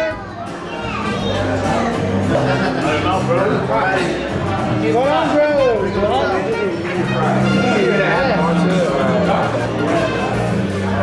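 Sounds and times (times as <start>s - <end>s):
background music: 0.0s - 11.0s
people laughing: 1.3s - 3.7s.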